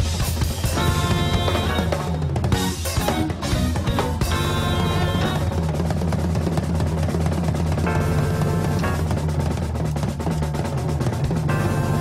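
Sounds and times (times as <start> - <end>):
drum solo: 0.0 - 12.0.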